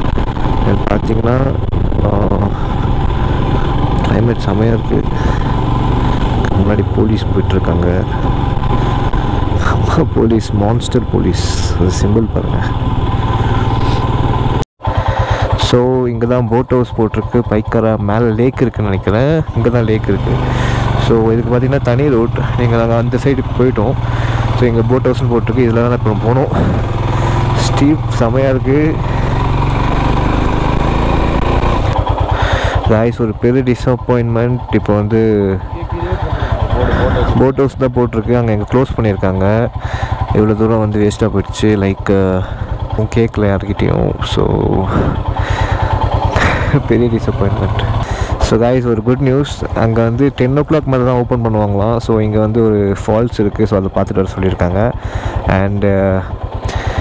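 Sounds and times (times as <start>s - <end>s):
wind and road noise: 0.0s - 15.8s, 18.6s - 57.0s
motorcycle engine running: 0.0s - 57.0s.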